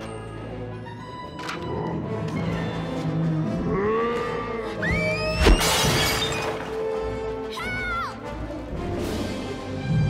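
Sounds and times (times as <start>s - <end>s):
orchestral music: 0.0s - 10.0s
shattering debris: 5.4s - 6.9s
heavy crash of smashing porcelain: 5.6s - 6.7s.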